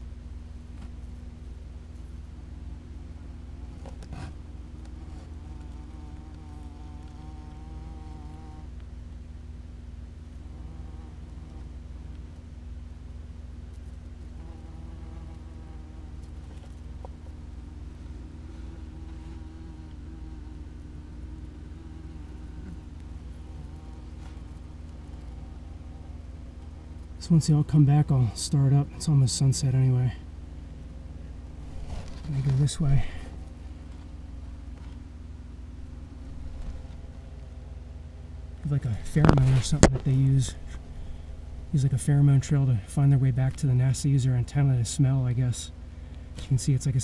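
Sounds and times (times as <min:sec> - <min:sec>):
steady low hum: 0:00.0 - 0:47.0
wasps buzzing in flight: 0:00.7 - 0:09.0, 0:10.0 - 0:47.0.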